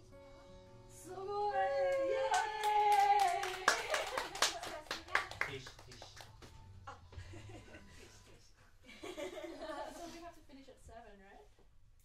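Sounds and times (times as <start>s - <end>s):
audience clapping: 1.9s - 6.7s.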